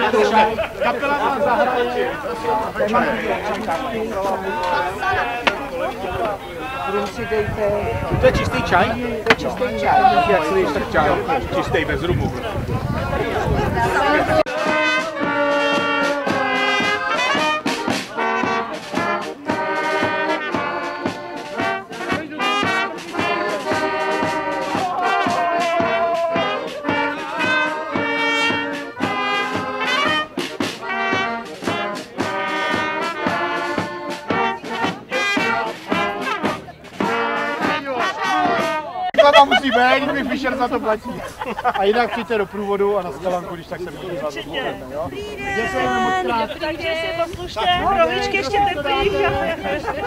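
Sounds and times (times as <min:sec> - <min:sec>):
brass band playing: 0:00.0 - 0:50.0
person talking: 0:39.2 - 0:50.0.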